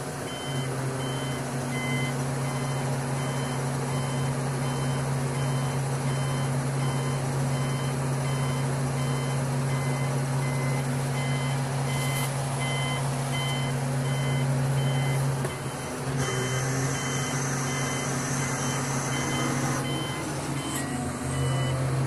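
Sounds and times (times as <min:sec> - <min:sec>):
crane engine running: 0:00.0 - 0:22.0
electronic warning beeper: 0:00.3 - 0:21.8.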